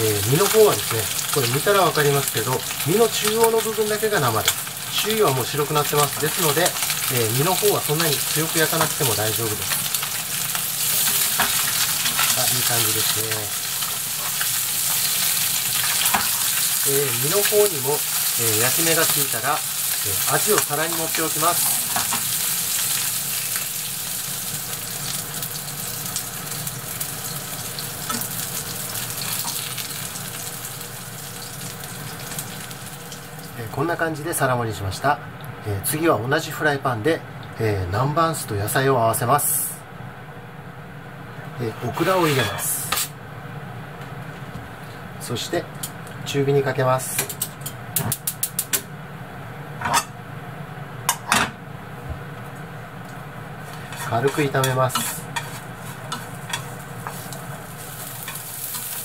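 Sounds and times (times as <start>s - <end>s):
fish sizzling in frying pan: 0.0s - 33.6s, 53.6s - 59.0s.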